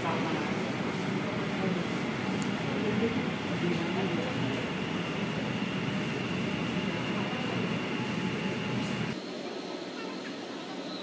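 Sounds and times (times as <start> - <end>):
thin high whine: 0.0 - 11.0
train braking rumble: 0.0 - 11.0.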